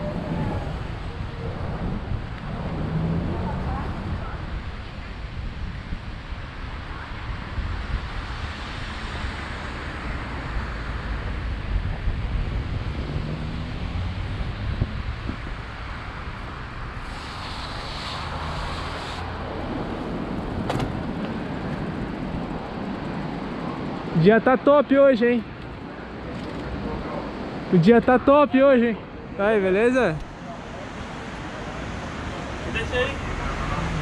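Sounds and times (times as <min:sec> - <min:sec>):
wind rumbling on microphone: 0:00.0 - 0:24.2
road traffic: 0:00.0 - 0:34.0
passing hiss: 0:17.0 - 0:19.3.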